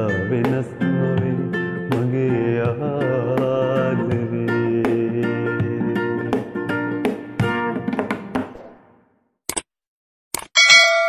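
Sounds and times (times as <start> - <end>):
bright notification bell ding: 10.6 - 11.0.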